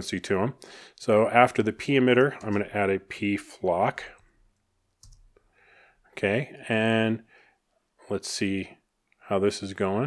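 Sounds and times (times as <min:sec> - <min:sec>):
sharp clicks: 0:04.2 - 0:05.4.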